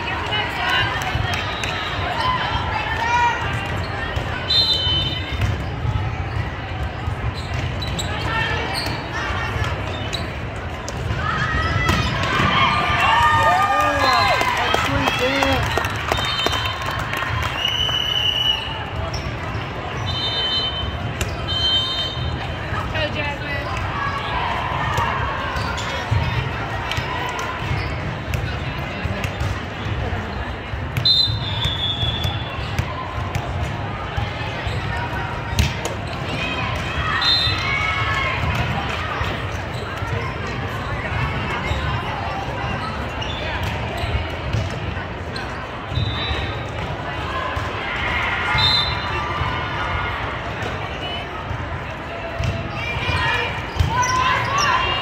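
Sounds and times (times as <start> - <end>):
crowd chatter in a hall: 0.0 - 55.0
overlapping voices in a hall: 12.3 - 19.0
referee's whistle blast: 20.1 - 22.3, 31.0 - 32.4, 48.5 - 49.1.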